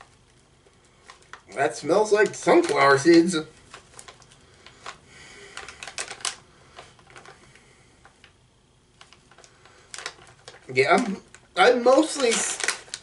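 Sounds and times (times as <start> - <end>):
plastic snack pouch crinkling: 0.0 - 13.0.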